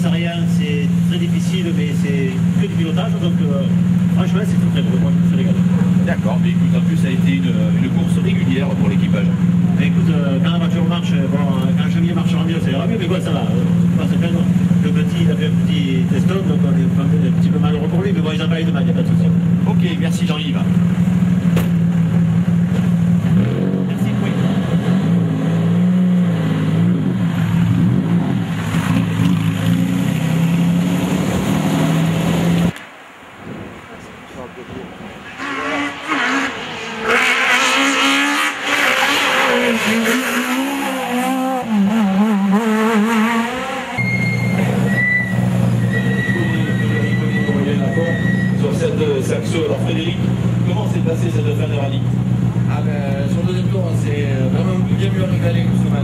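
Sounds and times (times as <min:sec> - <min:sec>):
rally car driven hard: 0:00.0 - 0:32.8, 0:35.0 - 0:56.0
rally car engine droning: 0:00.0 - 0:32.8, 0:35.0 - 0:56.0.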